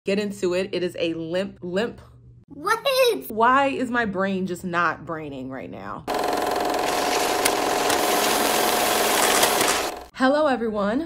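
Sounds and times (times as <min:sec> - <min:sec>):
film projector whirring and rattling: 0:06.1 - 0:10.1.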